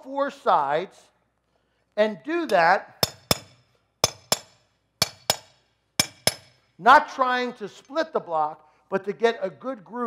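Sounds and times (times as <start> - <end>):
hammer striking chisel on concrete: 2.5 - 6.6.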